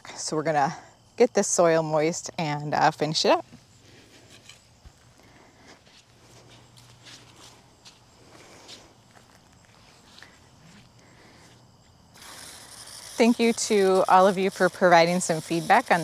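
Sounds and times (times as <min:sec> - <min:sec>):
faint footsteps: 0:03.4 - 0:12.1
hose spraying water onto mulch: 0:12.2 - 0:16.0.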